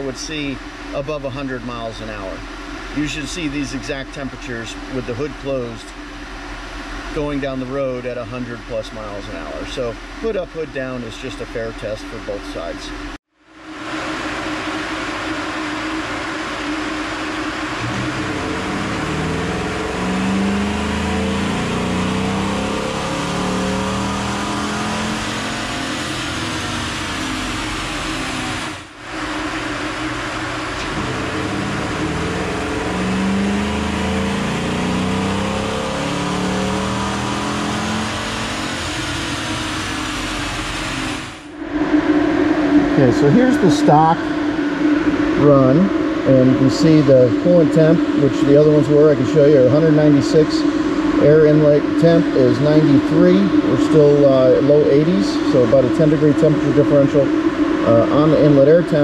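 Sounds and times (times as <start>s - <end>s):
car engine revving at full throttle: 0.0s - 59.0s.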